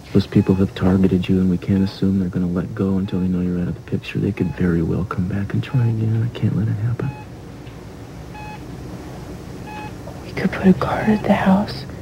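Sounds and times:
patient monitor beeping: 0.0s - 7.4s, 8.3s - 8.8s, 9.6s - 11.9s
low steady hum: 0.0s - 12.0s.

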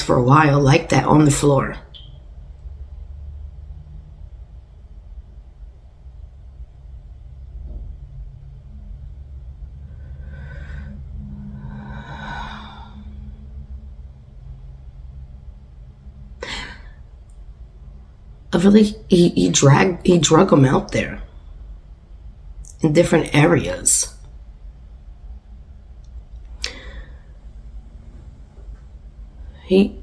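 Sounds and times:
steady low hum: 0.0s - 30.0s
person breathing: 9.8s - 13.6s, 16.4s - 17.0s, 26.6s - 28.2s.

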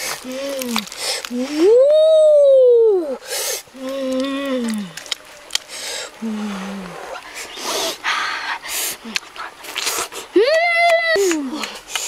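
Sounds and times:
chewing: 0.0s - 1.4s, 3.8s - 6.1s, 8.8s - 10.3s
breathy noises: 0.0s - 1.8s, 3.0s - 10.4s
boy humming mmm sounds: 0.0s - 5.1s, 6.1s - 8.0s.

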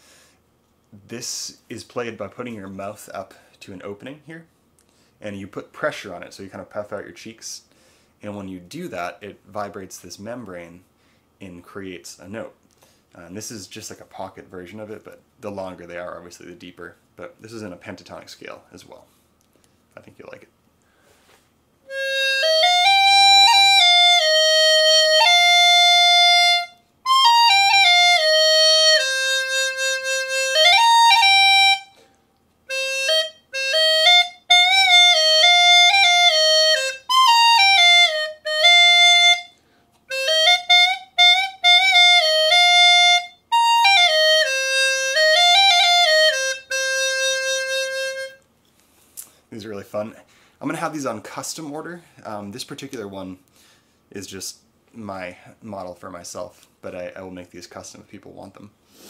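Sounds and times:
reedy membrane flute melody: 21.9s - 32.1s, 32.7s - 48.4s.

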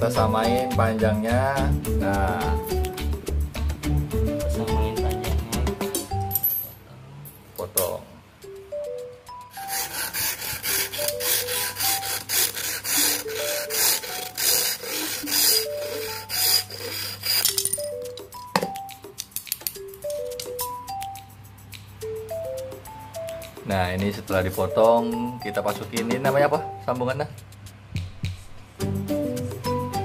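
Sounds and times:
background music: 0.0s - 6.8s, 7.7s - 30.0s
hacksaw cutting metal pole: 9.5s - 17.7s.

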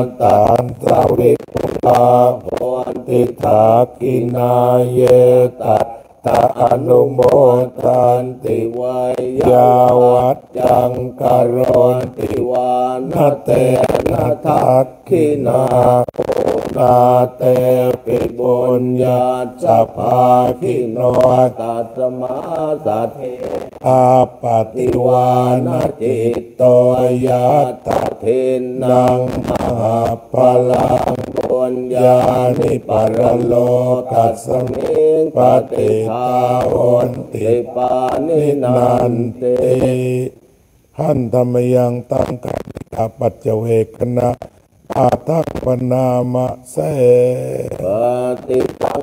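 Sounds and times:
monks chanting in unison: 0.0s - 49.0s.

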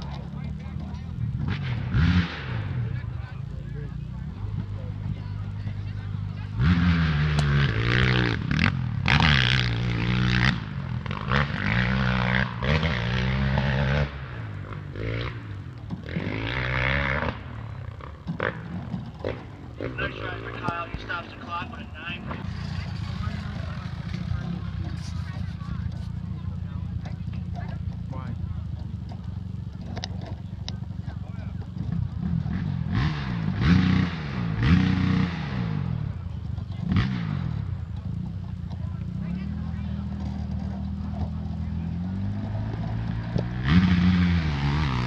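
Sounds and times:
indistinct talking: 0.0s - 8.7s, 17.2s - 32.2s
dirt bike engines running: 0.0s - 45.0s.

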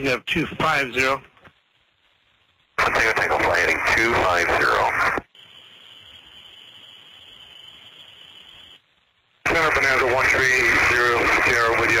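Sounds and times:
radio voice transmission: 0.0s - 1.3s, 2.8s - 5.3s, 9.4s - 12.0s
radio channel hiss: 0.0s - 12.0s.

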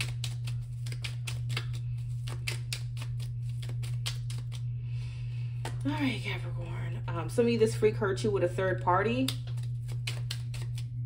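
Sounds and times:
cards being shuffled: 0.0s - 4.6s, 9.3s - 11.0s
steady low hum: 0.0s - 11.0s.

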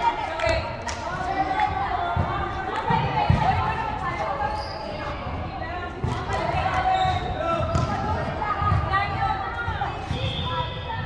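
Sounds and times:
players' voices echoing: 0.0s - 11.0s
volleyball bouncing on wooden floor: 2.0s - 3.8s, 5.9s - 10.4s.

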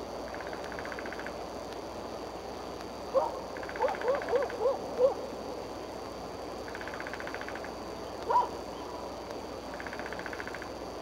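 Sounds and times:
faint hiss: 0.0s - 11.0s
bird hooting calls: 3.2s - 5.2s.

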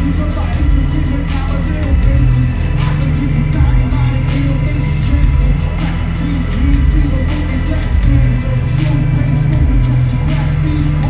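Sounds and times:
hip-hop beat through a pa: 0.0s - 11.0s
person rapping: 0.0s - 11.0s.

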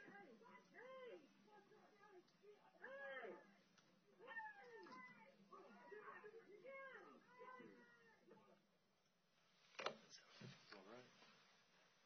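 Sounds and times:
faint recorded voices calling out: 0.0s - 8.7s.

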